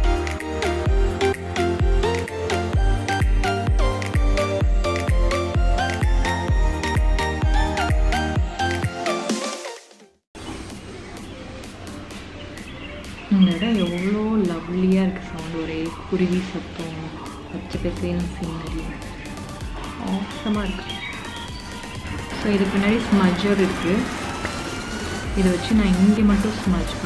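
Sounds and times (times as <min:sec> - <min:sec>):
birds chirping faintly: 0:10.4 - 0:24.2
woman talking: 0:13.3 - 0:19.0, 0:20.0 - 0:20.9, 0:22.3 - 0:24.1, 0:25.3 - 0:27.0.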